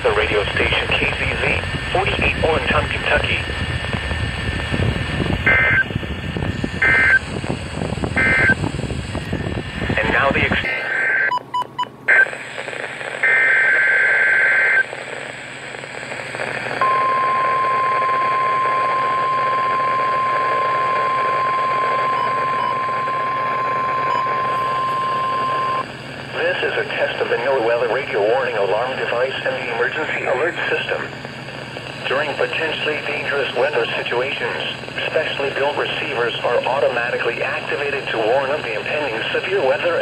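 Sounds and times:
radio static: 0.0 - 40.0
steady warning alarm tone: 5.4 - 8.7, 16.8 - 34.8.

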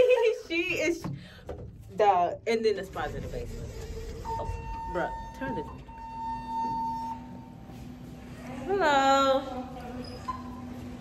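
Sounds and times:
elevator high whine: 3.2 - 11.0.

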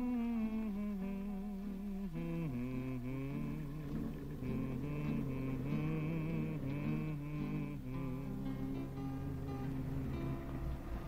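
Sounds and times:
low sustained notes: 0.0 - 11.0
slow reedy melody: 0.0 - 11.0.

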